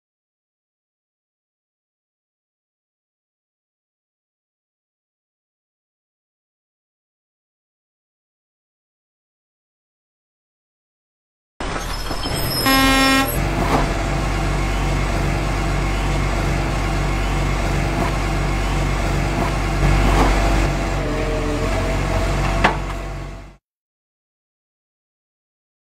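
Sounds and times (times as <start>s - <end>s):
road noise: 11.6s - 23.6s
vehicle horn honking: 12.6s - 13.5s
engine running: 12.6s - 23.6s.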